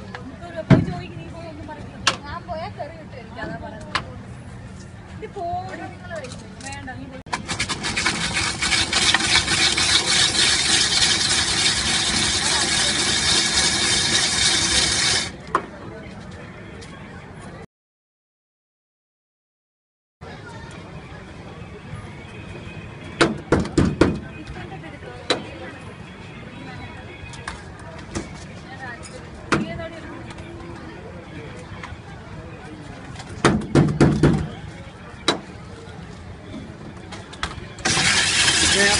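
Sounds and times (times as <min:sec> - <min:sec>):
stall background noise: 0:00.0 - 0:17.7, 0:20.2 - 0:38.9
ice-shaving machine scraping ice: 0:07.3 - 0:15.4, 0:37.8 - 0:38.9.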